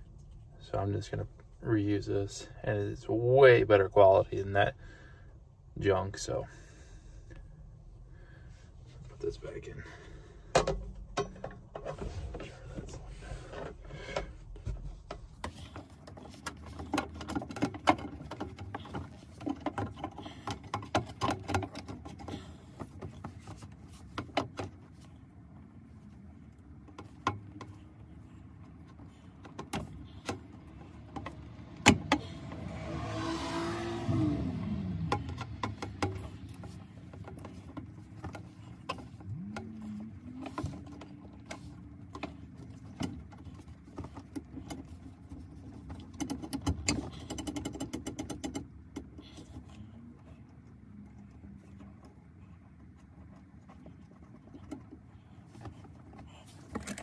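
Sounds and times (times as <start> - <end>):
vehicle passing: 29.9 - 42.8.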